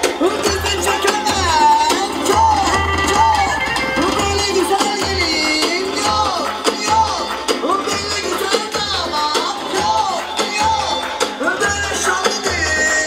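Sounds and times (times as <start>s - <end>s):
dance music over sound system: 0.0s - 13.0s.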